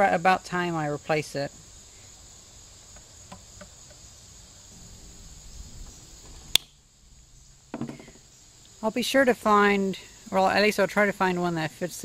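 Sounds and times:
crickets chirring: 0.0s - 12.0s
sharp click: 6.5s - 6.8s
soft knocks: 7.7s - 8.2s
handling noise: 7.7s - 8.3s.

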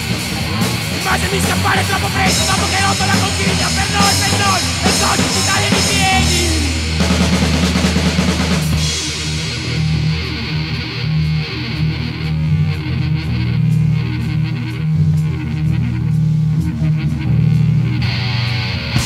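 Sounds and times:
bass guitar: 0.0s - 19.0s
electric guitar low notes: 0.0s - 19.0s.

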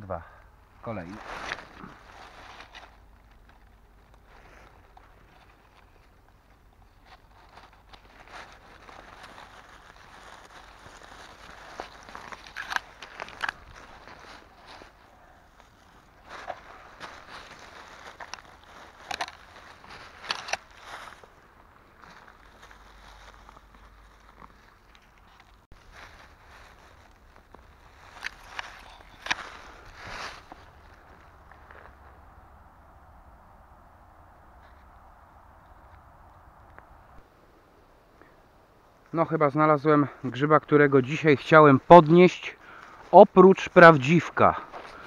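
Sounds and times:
dry leaves rustling and crackling: 0.8s - 32.6s.

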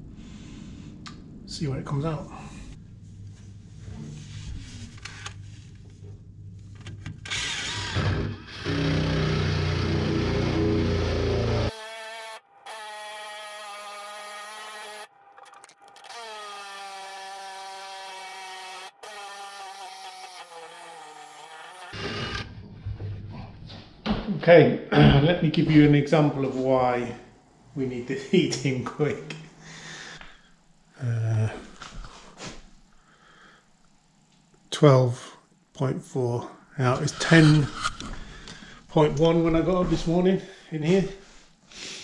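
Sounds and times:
cordless drill boring into floor: 7.2s - 12.8s, 21.8s - 22.5s.

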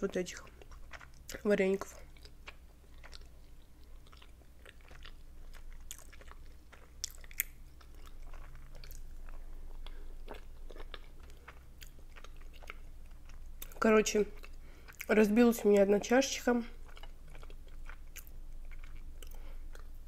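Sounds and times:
person chewing dumplings: 0.0s - 20.0s.

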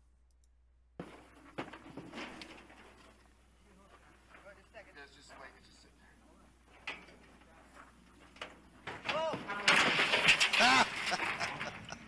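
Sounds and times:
voices calling out: 9.0s - 12.0s.

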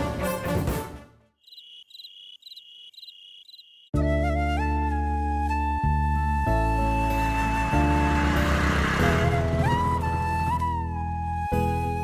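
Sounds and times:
crickets chirping: 1.4s - 3.9s
flute-led background music: 3.9s - 12.0s.

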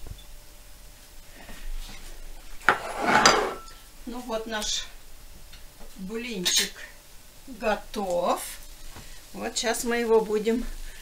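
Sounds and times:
cookware clattering on china plate: 2.7s - 3.8s.

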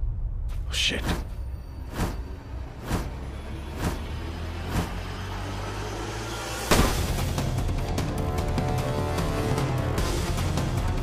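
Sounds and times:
film score: 0.0s - 11.0s.

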